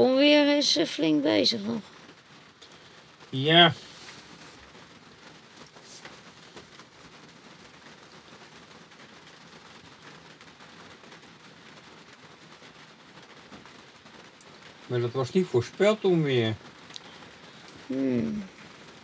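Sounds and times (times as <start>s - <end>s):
rain falling: 0.0s - 19.0s
raindrops ticking: 0.0s - 19.0s.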